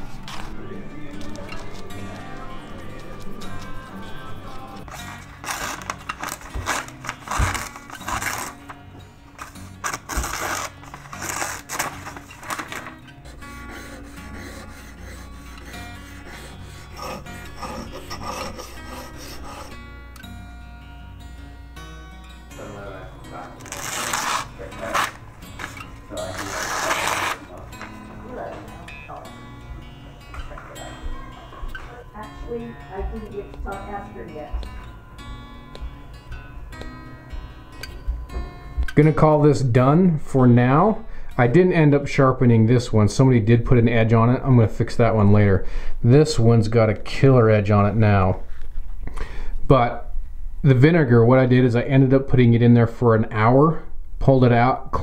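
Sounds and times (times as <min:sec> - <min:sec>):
background music: 0:00.0 - 0:55.0
toothbrush scrubbing knife: 0:13.5 - 0:19.8.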